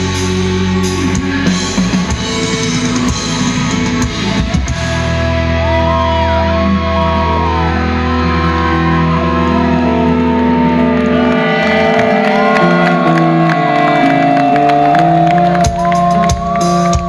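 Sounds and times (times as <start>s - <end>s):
electric lead guitar melody: 0.0s - 17.0s.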